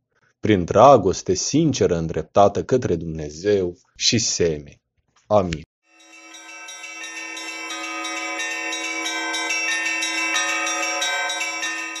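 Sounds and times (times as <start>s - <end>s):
church bells ringing: 5.9s - 12.0s.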